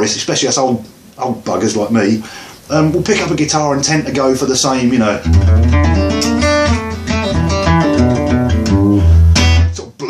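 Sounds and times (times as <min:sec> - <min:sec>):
acoustic guitar fingerpicking: 0:05.2 - 0:09.8.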